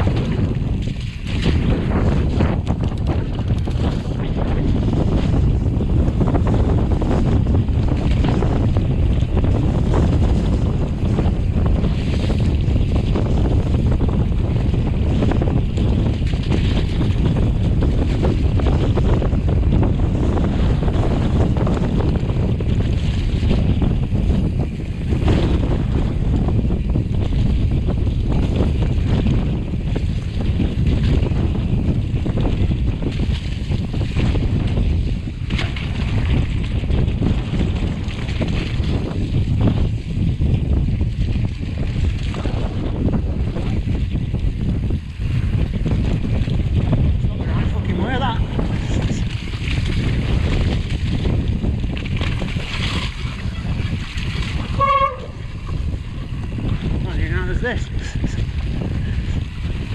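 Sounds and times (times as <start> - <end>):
bike knocks and rattles: 0.0 - 47.0
wind buffeting microphone: 0.0 - 59.9.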